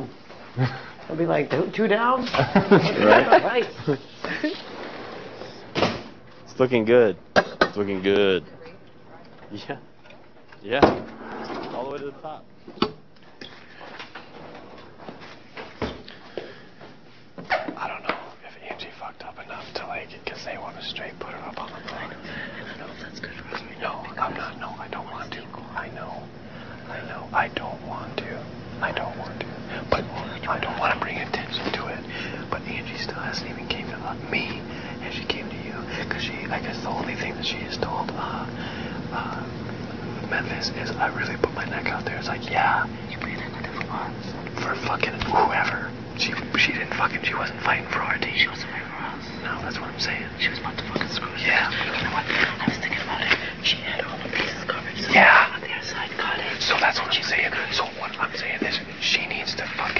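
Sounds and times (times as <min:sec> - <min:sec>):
people whispering: 0:17.5 - 0:59.9.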